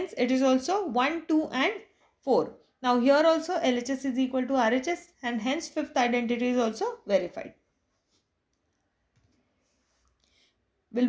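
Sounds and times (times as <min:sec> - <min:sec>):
person speaking: 0:00.0 - 0:07.7.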